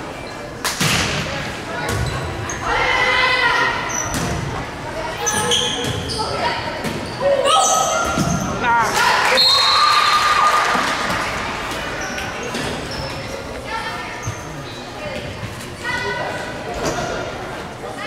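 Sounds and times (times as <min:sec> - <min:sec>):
volleyball hits and bounces: 0:04.1 - 0:04.5
crowd shouting and cheering: 0:07.3 - 0:11.8.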